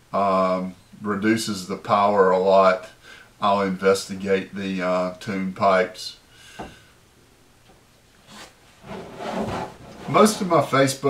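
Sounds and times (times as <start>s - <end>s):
board scraping on tabletop: 8.2s - 10.6s.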